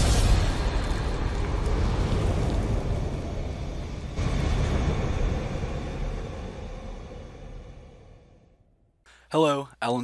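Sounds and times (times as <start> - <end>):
low rumbling sound effect: 0.0 - 9.0.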